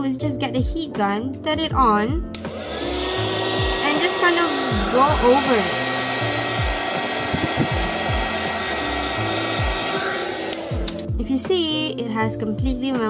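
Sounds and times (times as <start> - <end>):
heat gun blowing: 2.4 - 11.1
music with bass beat: 6.4 - 10.0, 10.7 - 11.7.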